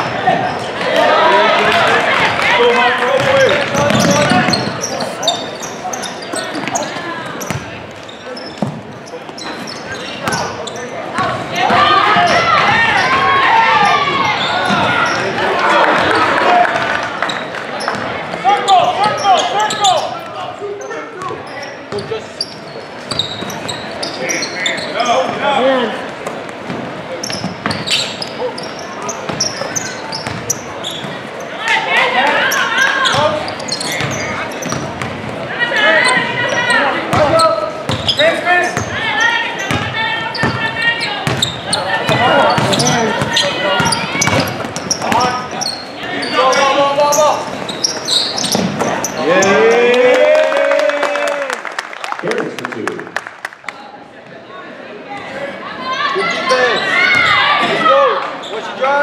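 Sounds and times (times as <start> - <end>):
voices calling and shouting: 0.0 - 26.2, 27.1 - 50.4, 54.7 - 59.0
basketball bouncing on wooden floor: 3.2 - 4.7.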